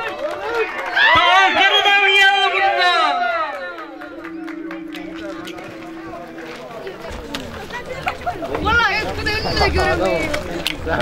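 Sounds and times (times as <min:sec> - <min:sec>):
outdoor crowd voices: 0:00.0 - 0:11.0
steady held tone: 0:02.4 - 0:09.4.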